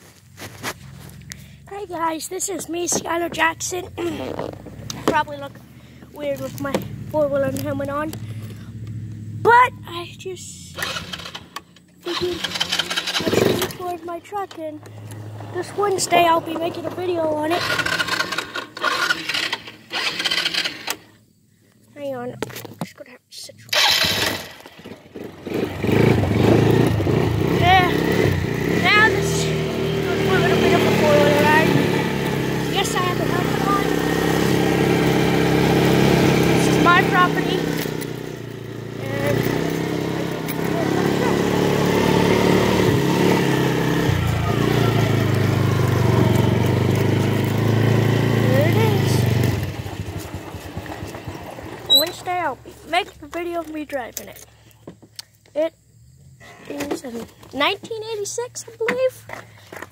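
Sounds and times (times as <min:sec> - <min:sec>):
atv engine running: 0:00.0 - 0:22.6, 0:23.6 - 0:54.9, 0:55.6 - 0:59.9.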